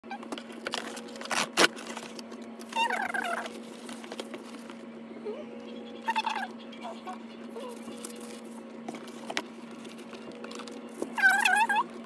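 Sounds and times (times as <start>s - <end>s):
steady low hum: 0.0s - 12.0s
cardboard box tearing: 0.7s - 2.2s.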